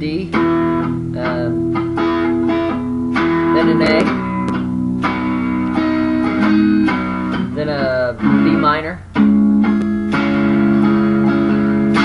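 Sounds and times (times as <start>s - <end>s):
electric guitar strumming: 0.0s - 12.0s.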